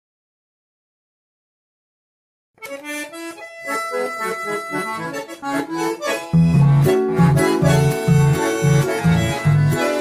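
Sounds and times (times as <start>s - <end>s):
bandoneons playing: 2.6s - 10.0s.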